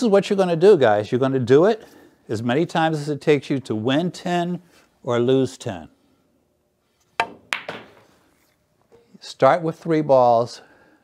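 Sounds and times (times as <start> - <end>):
pool balls clicking together: 7.2 - 8.1.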